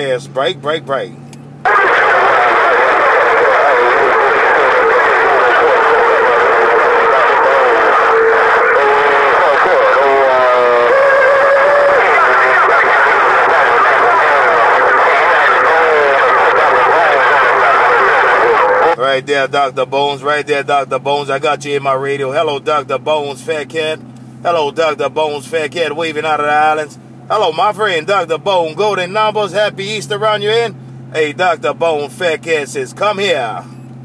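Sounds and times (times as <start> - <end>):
garbled radio voices: 0.0 - 33.8
steady radio tone: 1.6 - 33.8.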